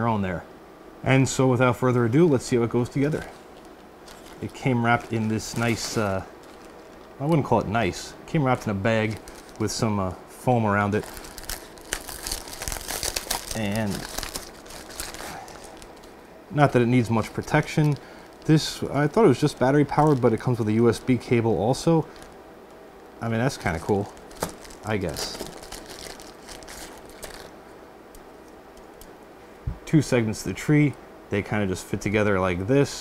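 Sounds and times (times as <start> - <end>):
foam wrap and plastic bag crinkling: 2.2 - 10.1, 10.7 - 22.4, 23.2 - 27.6.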